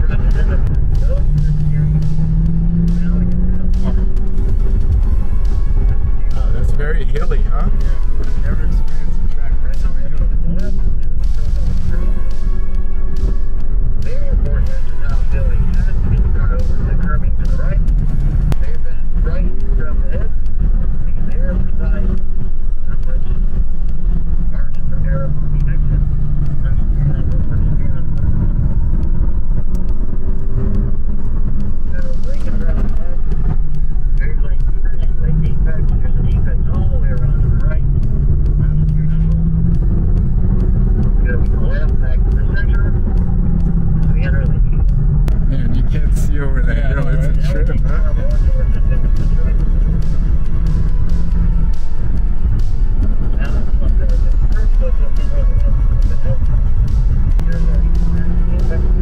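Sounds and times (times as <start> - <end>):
car engine revving: 0.0 - 59.0
road noise inside car: 0.0 - 59.0.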